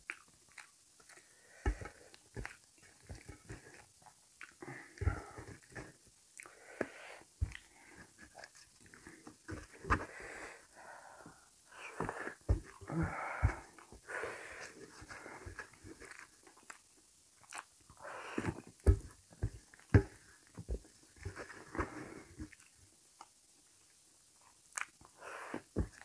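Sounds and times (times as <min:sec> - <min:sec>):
chewing and wet mouth noises: 0:00.0 - 0:04.8, 0:15.2 - 0:18.0, 0:22.4 - 0:25.2
breathy hissing breaths: 0:01.2 - 0:02.2, 0:04.6 - 0:16.0, 0:18.0 - 0:18.7, 0:21.6 - 0:22.5, 0:25.1 - 0:26.0.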